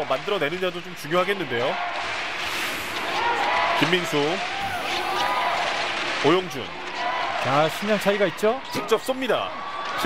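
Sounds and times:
arena crowd murmur: 0.8 - 10.0.

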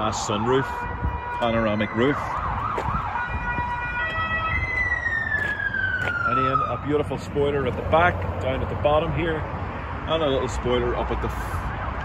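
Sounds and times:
emergency siren: 0.0 - 7.8, 10.3 - 12.0.

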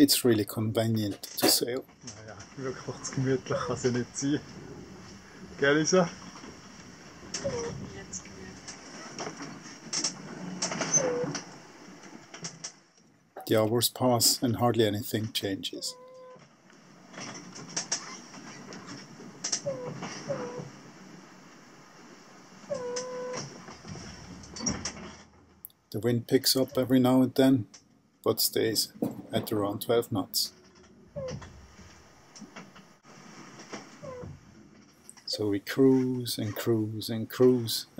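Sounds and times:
steady hiss: 0.0 - 9.8
squeaky creak: 7.2 - 12.6, 15.7 - 16.5, 17.1 - 20.8, 22.6 - 25.3, 30.5 - 32.8, 33.6 - 36.9.

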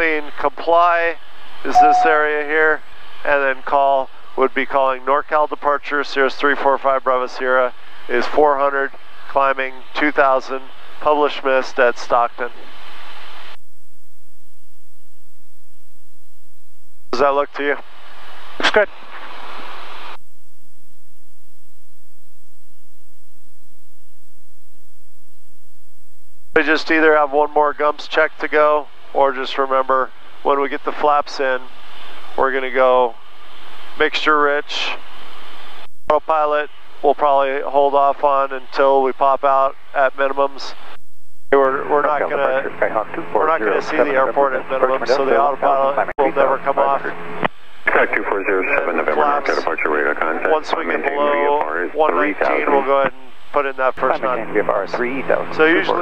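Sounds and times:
voice over aircraft radio: 0.0 - 12.6, 17.2 - 17.8, 18.6 - 18.9, 36.1 - 40.8, 41.5 - 47.2, 47.9 - 56.0
airplane engine and propeller drone: 0.0 - 13.6, 17.2 - 20.1, 26.6 - 56.0
radio hiss: 0.0 - 13.6, 17.2 - 20.2, 26.6 - 56.0.

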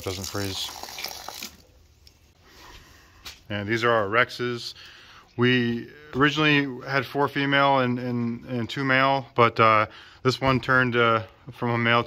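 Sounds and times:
water gushing from a pipe: 0.0 - 1.6.

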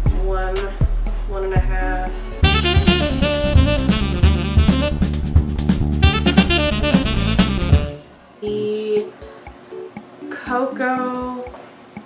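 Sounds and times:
background music with plucked strings: 0.1 - 12.0.

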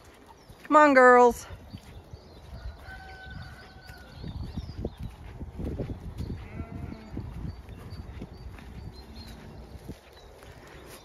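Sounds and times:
bird chirps: 0.0 - 11.0
footsteps through grass: 0.0 - 11.0
sheep bleating: 6.4 - 7.2.

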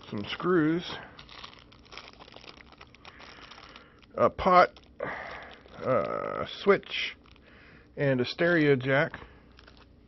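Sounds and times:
plastic bags crinkling: 0.0 - 7.9, 8.9 - 10.0.

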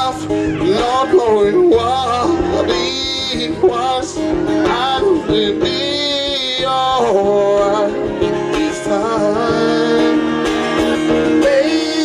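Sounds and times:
acoustic guitar: 0.0 - 12.0
man singing a love ballad: 0.0 - 12.0.

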